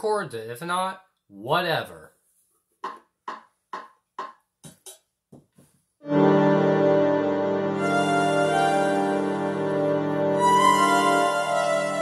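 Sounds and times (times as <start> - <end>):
held keyboard chord: 6.0 - 12.0.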